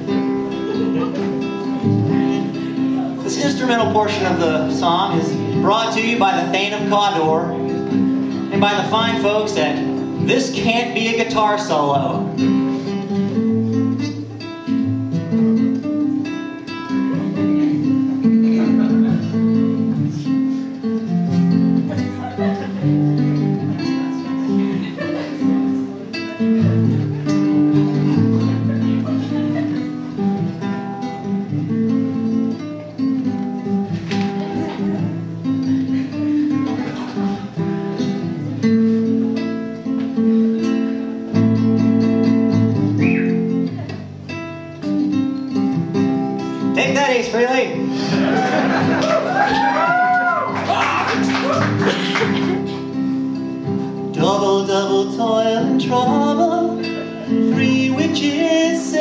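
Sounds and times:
acoustic guitar picked and strummed: 0.0s - 59.0s.

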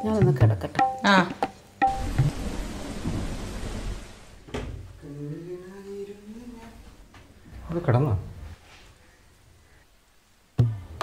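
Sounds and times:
rain falling on foliage: 1.0s - 6.9s
low rumble of thunder: 1.9s - 5.0s.

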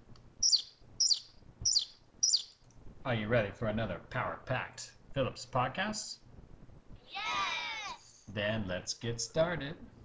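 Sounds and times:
bird chirping: 0.4s - 2.7s.

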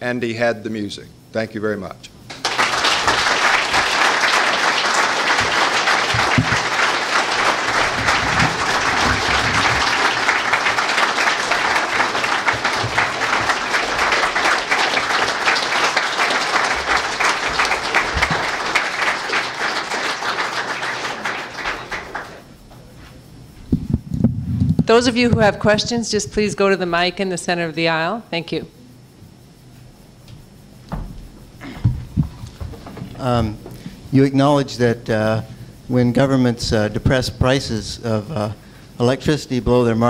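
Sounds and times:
audience applauding: 2.3s - 22.6s, 31.6s - 33.4s.

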